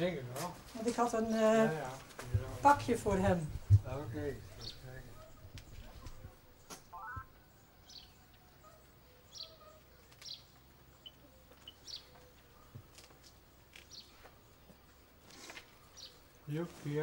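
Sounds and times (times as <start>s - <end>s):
faint bird chirps: 4.5s - 12.7s.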